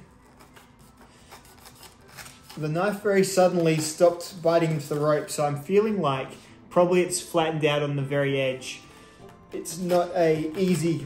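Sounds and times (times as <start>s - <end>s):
knife rasping through rope: 0.0s - 3.0s.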